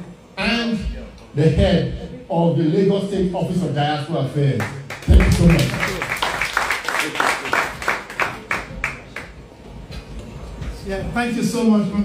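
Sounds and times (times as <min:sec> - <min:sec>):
hands clapping: 0:04.6 - 0:09.4.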